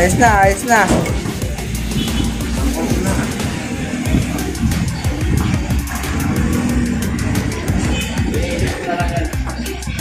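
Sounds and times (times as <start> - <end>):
music with steady beat from tv speaker: 0.0 - 10.0.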